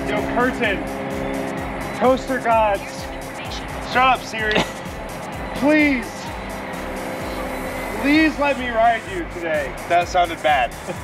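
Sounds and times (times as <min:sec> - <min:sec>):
music of held tones: 0:00.0 - 0:11.0
road traffic noise: 0:00.0 - 0:11.0.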